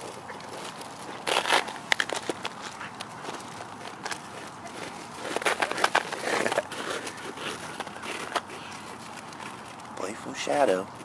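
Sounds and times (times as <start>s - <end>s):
footsteps crunching on snow and gravel: 0.0s - 11.0s.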